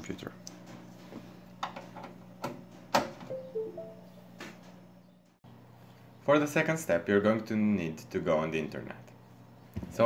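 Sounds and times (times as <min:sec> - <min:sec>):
computer low hum: 0:03.3 - 0:05.6.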